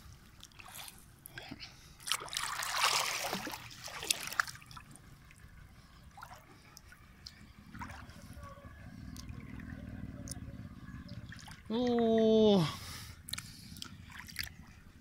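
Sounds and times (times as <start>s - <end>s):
water splashing and sloshing: 0.0s - 15.0s
water trickling and dripping: 2.0s - 8.2s.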